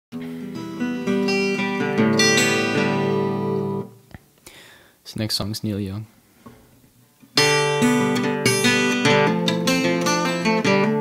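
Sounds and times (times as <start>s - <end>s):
acoustic guitar plucked: 0.1s - 4.2s, 7.2s - 11.0s.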